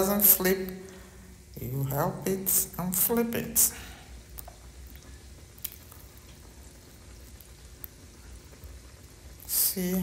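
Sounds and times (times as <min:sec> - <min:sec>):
fritters sizzling in oil: 0:02.1 - 0:10.0.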